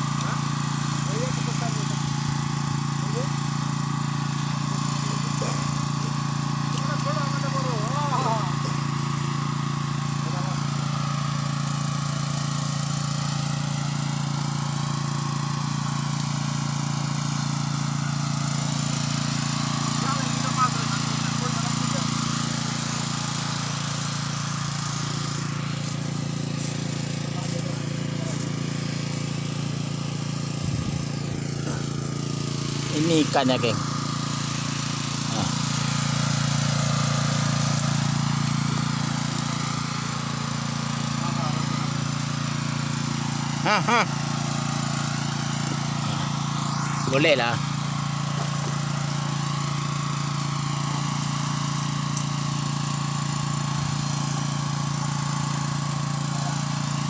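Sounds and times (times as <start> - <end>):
small engine running steadily: 0.0 - 57.0.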